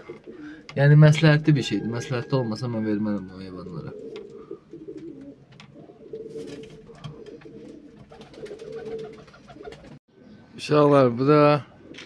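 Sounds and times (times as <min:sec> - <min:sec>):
pigeons cooing: 0:00.0 - 0:10.6, 0:11.5 - 0:12.0.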